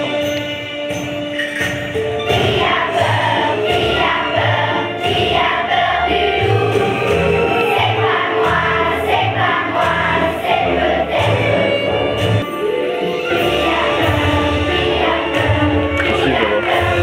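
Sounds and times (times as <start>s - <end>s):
musical accompaniment with bass: 0.0s - 17.0s
children's choir singing: 1.9s - 17.0s.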